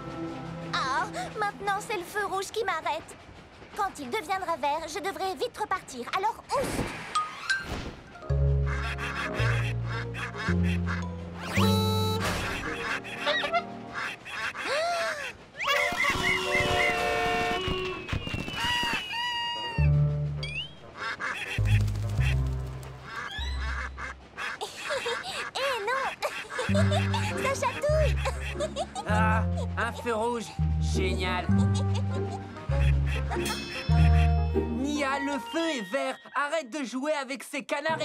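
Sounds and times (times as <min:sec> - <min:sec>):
cartoon background music: 0:00.0 - 0:02.6, 0:08.2 - 0:14.6, 0:19.4 - 0:24.1, 0:26.5 - 0:36.6
ducks quacking: 0:08.6 - 0:17.8, 0:20.5 - 0:30.3, 0:31.0 - 0:34.6.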